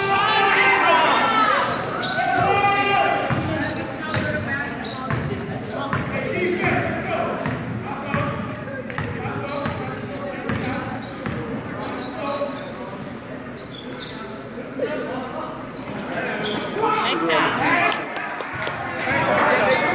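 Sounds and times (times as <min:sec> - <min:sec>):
people shouting in a hall: 0:00.0 - 0:03.3.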